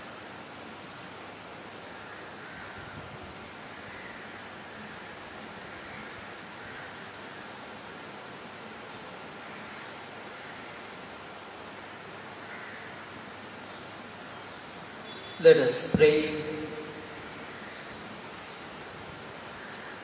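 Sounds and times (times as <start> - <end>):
room noise hiss: 0.0 - 20.0.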